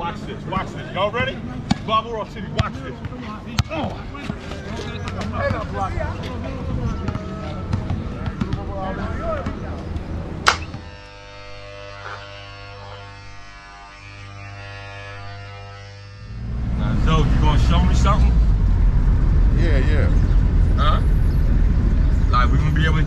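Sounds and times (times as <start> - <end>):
basketball bouncing on concrete: 7.0 - 9.7
steady buzzing drone: 9.6 - 23.0.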